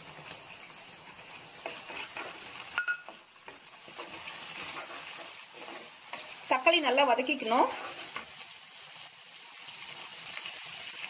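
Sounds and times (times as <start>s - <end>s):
spatula stirring: 0.0s - 9.1s
onion and tomato frying in oil: 0.0s - 11.0s.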